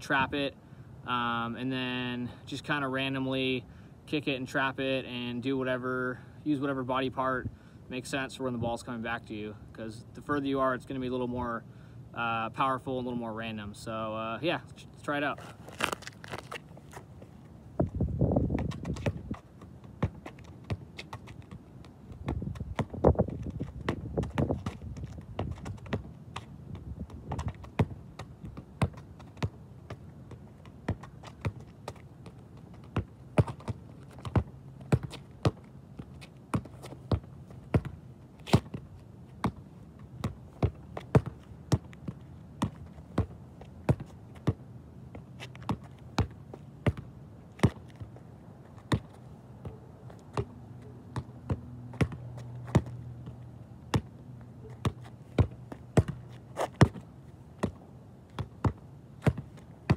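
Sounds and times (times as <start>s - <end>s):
ball kicked against wall thuds: 17.8s - 30.0s, 32.9s - 35.6s, 36.5s - 38.8s, 40.2s - 44.6s, 45.5s - 48.0s, 48.8s - 49.7s, 51.1s - 53.0s, 53.9s - 54.1s, 54.8s - 59.9s.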